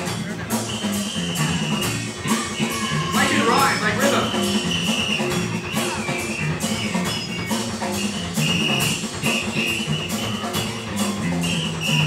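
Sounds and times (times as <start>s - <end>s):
crowd noise: 0.0s - 12.0s
live punk rock band: 0.0s - 12.0s.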